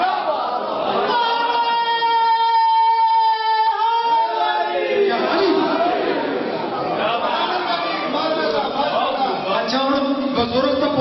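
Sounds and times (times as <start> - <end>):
men's voices overlapping: 0.0 - 11.0.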